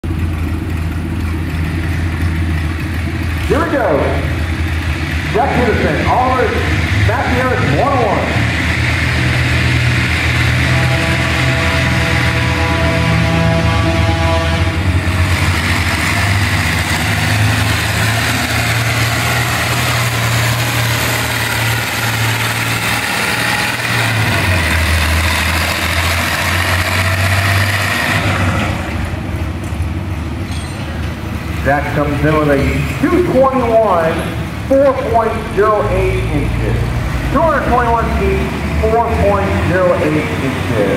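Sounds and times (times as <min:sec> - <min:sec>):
tractor engine running flat out: 0:00.0 - 0:40.9
steady high whine: 0:00.1 - 0:26.1.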